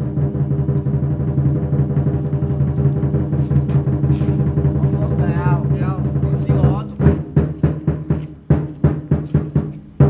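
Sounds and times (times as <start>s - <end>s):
rapid percussion drumming: 0.0s - 10.0s.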